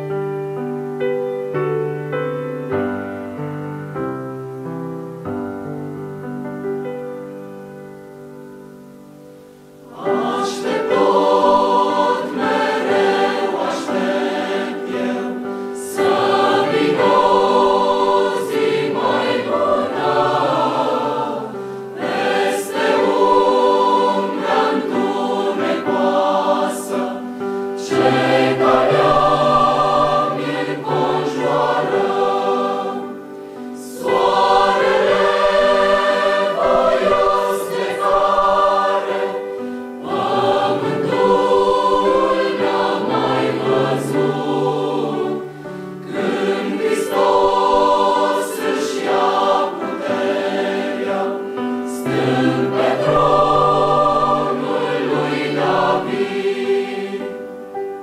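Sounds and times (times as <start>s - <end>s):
mixed choir singing: 9.8s - 58.0s.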